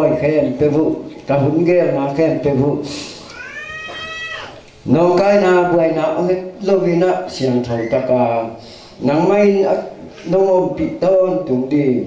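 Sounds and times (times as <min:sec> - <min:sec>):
high-pitched cry: 0:03.3 - 0:04.6.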